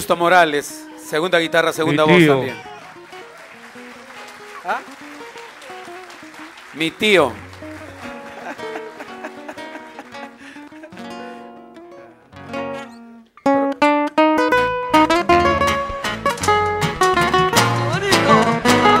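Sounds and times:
acoustic guitars playing: 0.0 - 19.0
cajon thumps: 15.2 - 19.0.

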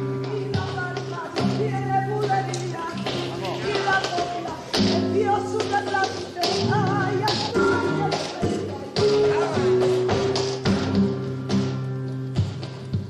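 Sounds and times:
held guitar chords: 0.0 - 13.0
person singing flamenco: 0.0 - 13.0.

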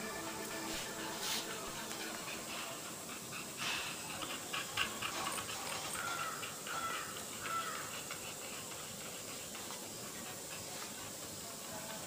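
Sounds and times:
dog panting: 0.0 - 12.0.

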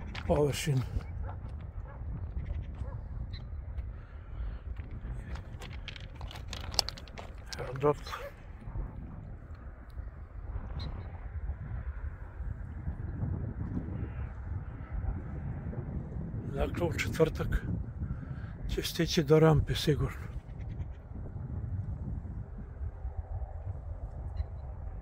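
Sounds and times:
footsteps crunching on ballast: 0.0 - 8.3
wind rumbling on microphone: 0.0 - 25.0.

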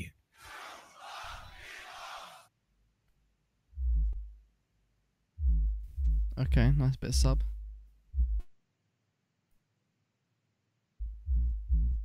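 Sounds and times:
beatboxed sub-bass hits: 3.8 - 4.4, 5.4 - 8.5, 11.0 - 12.0.

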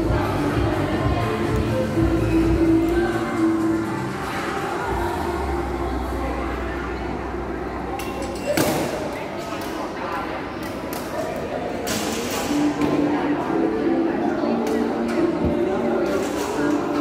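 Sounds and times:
background music: 0.0 - 7.9, 12.3 - 17.0
indistinct voices: 0.0 - 17.0.

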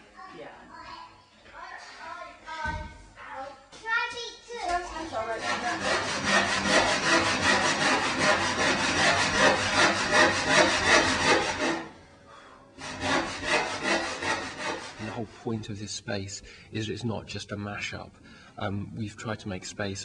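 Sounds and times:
hand saw cutting wood: 5.2 - 12.0, 12.8 - 15.2.

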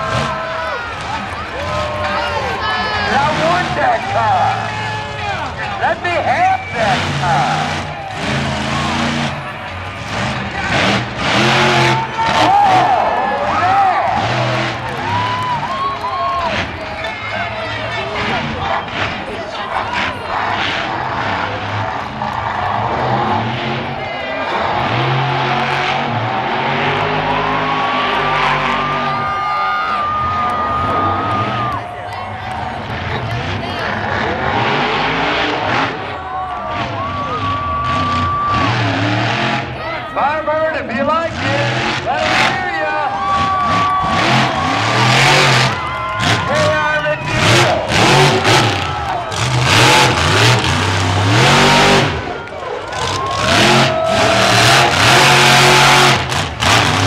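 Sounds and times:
truck engine revving hard: 0.0 - 57.0.

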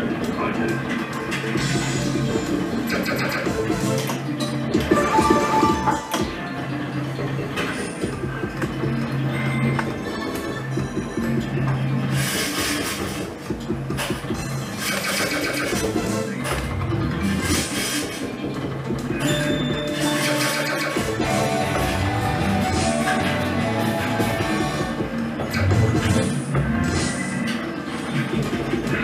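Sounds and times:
electronic slot machine music: 1.5 - 11.6, 15.7 - 28.9.

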